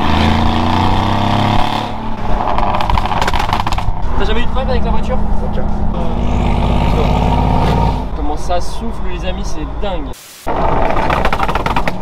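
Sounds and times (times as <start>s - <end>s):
exhaust pops crackling: 1.6s - 5.9s, 10.5s - 12.0s.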